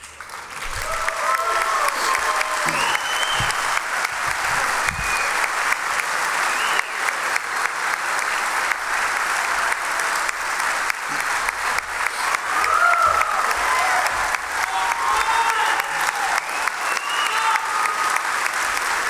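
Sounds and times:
audience applause: 0.0 - 19.0
shouts from audience: 0.8 - 3.9, 12.4 - 18.5.

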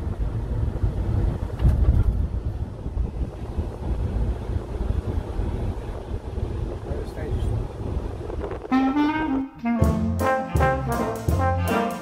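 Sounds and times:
wind buffeting microphone: 0.0 - 9.4
road and engine rumble: 0.0 - 12.0.

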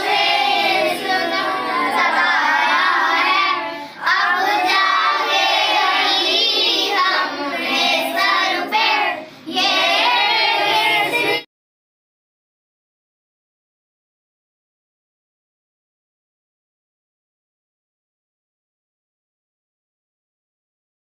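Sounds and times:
children singing together: 0.0 - 11.5.

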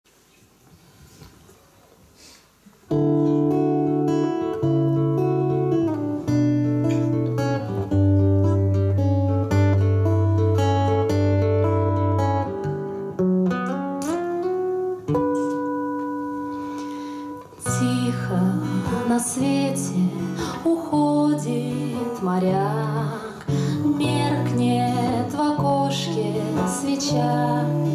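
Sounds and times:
acoustic guitar melody: 2.9 - 27.9
women singing: 17.6 - 27.9.

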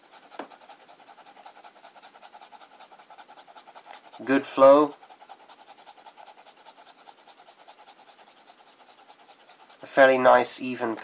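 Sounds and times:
pen nib scratching on paper: 0.0 - 9.9.

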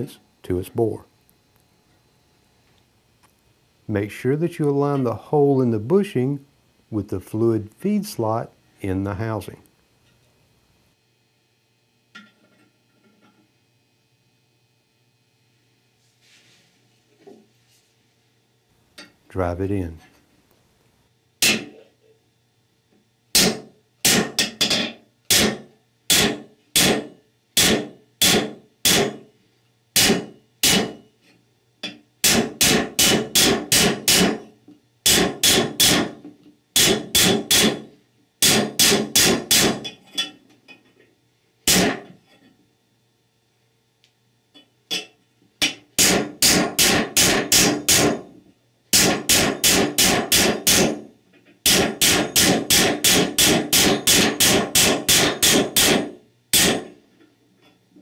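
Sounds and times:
hammer striking metal: 21.4 - 21.8, 23.3 - 29.2, 30.0 - 31.0, 31.8 - 34.5, 35.1 - 36.2, 36.8 - 37.8, 38.4 - 40.3, 41.7 - 42.1, 44.9 - 48.2, 49.0 - 51.0, 51.6 - 57.0.

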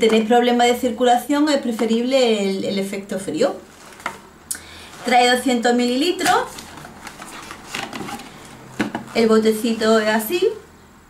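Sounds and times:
plastic tube rustling: 3.6 - 10.2.

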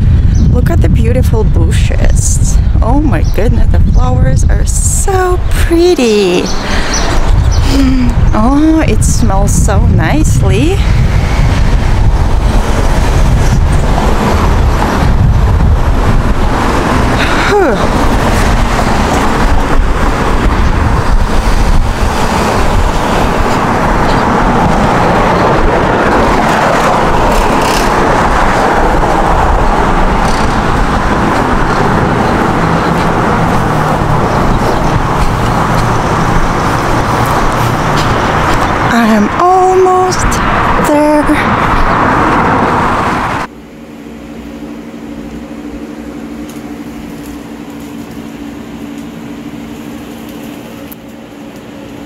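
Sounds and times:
passing cars with low rumble: 0.0 - 52.0.

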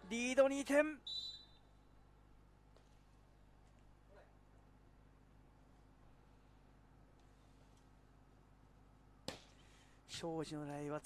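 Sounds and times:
short high whistle blast: 1.1 - 1.6.

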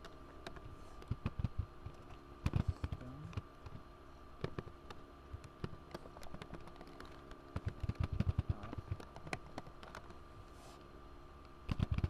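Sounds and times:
typing on computer keyboard: 0.0 - 3.8, 5.4 - 10.2, 11.7 - 12.0.

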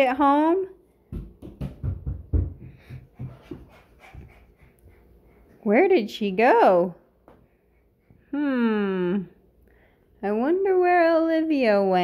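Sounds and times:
child running on wooden floor: 1.1 - 5.0.

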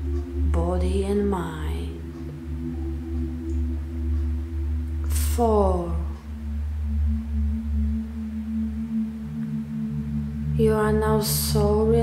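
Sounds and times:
meditation music drone: 0.0 - 12.0.

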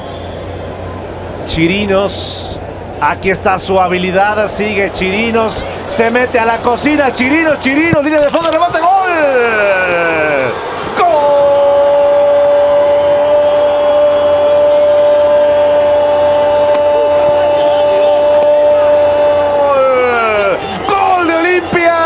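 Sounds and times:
commentator's long goal call: 8.8 - 22.0.

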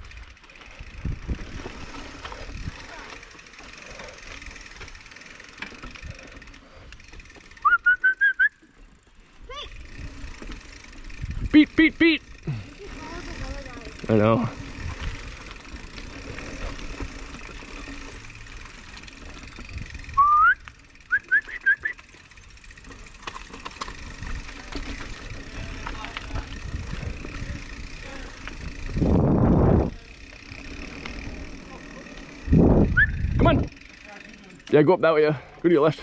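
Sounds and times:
rattle over roots and rocks: 0.0 - 7.7, 8.8 - 11.5, 12.2 - 36.0
mountain bike tyres on dirt: 0.0 - 36.0
short whistled chirps: 7.6 - 8.6, 20.1 - 22.0, 33.0 - 33.3
rising whistle: 7.6 - 8.7, 20.1 - 22.0, 32.9 - 33.3.

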